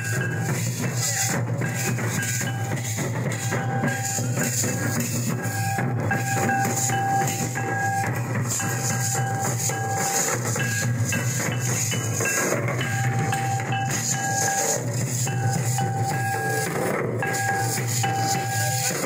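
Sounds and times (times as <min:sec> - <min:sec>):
barrel drums dance rhythm: 0:00.0 - 0:19.0.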